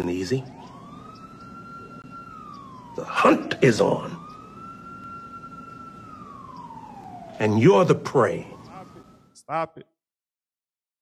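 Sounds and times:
siren wailing: 0.0 - 9.6.

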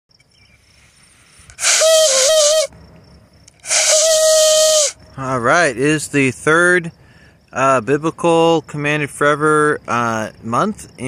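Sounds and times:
ram's horn blasts: 1.5 - 2.8, 3.6 - 5.3.

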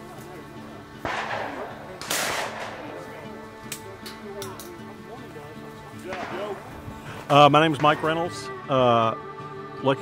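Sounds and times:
gunshots with echoing tail: 1.0 - 3.2, 6.0 - 6.9.

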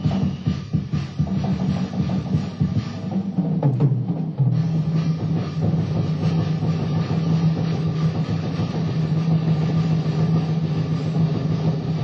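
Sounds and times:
fast dense drumming: 0.0 - 12.0.

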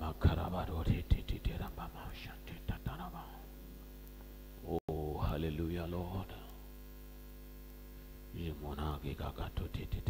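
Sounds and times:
man praying into microphone: 0.0 - 3.5, 4.6 - 6.7, 8.3 - 10.0
electrical mains hum: 0.0 - 10.0.

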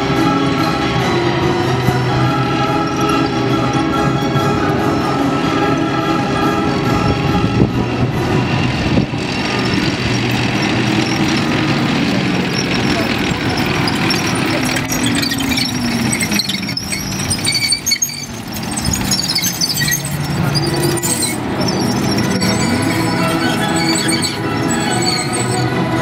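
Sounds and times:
diesel engines rumbling: 0.0 - 26.0
high squeaks from tracks: 0.0 - 26.0.

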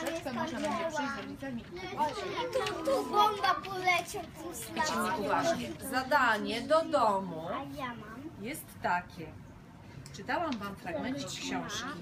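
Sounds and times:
children chattering: 0.0 - 8.4, 10.9 - 12.0.

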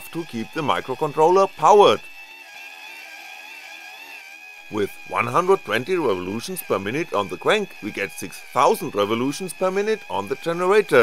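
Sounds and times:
geared motor high whine: 0.0 - 11.0.

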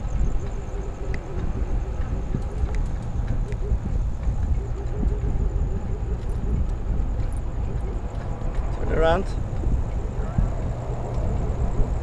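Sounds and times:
road noise on asphalt: 0.0 - 12.0
wind rumbling on microphone: 0.0 - 12.0.

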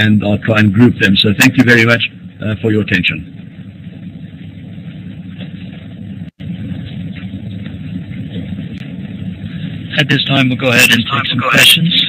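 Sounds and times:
low rumbling line noise: 0.0 - 12.0.

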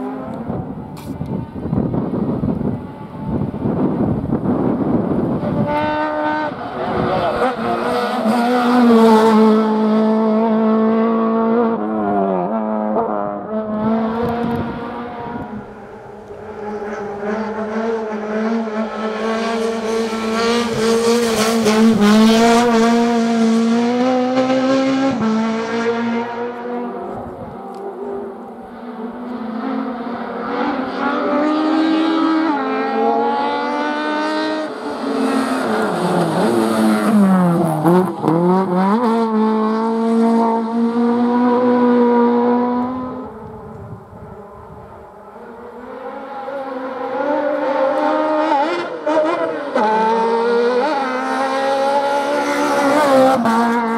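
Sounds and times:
car engine revving hard: 16.5 - 27.5, 29.3 - 43.5, 45.5 - 53.9.

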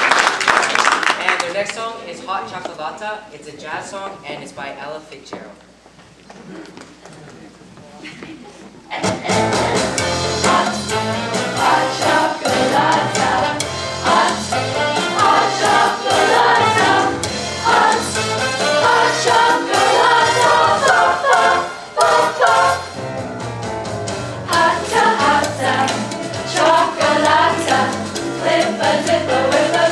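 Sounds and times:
room murmur: 5.2 - 14.5
jazz band playing: 9.1 - 29.9
low bass notes: 22.5 - 29.8.

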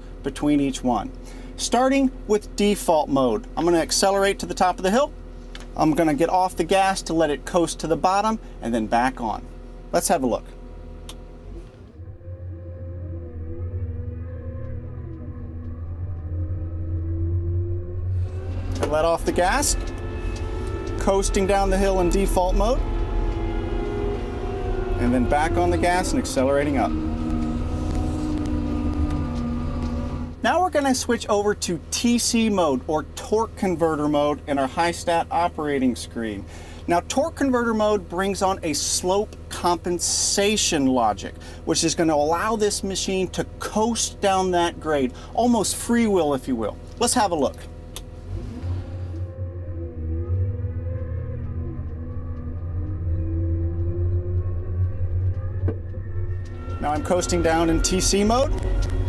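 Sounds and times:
wheel loader diesel engine: 9.2 - 39.6, 43.4 - 59.0.

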